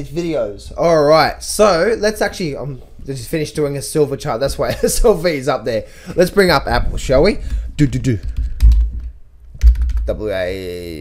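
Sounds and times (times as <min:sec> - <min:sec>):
computer keyboard typing: 0:08.2 - 0:10.1.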